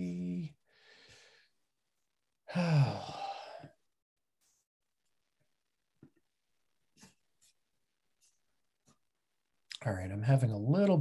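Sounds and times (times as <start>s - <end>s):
person sighing oh: 2.5s - 3.8s.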